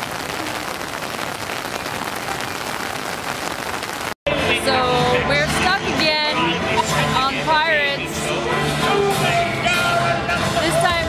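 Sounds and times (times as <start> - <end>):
heavy rain on standing water: 0.0 - 4.2
music with singing voice: 4.3 - 11.0.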